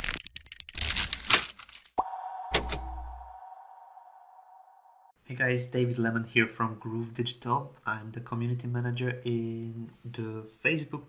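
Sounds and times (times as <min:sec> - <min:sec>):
low rumble: 0:02.0 - 0:05.1
steady electronic tone: 0:02.0 - 0:05.2.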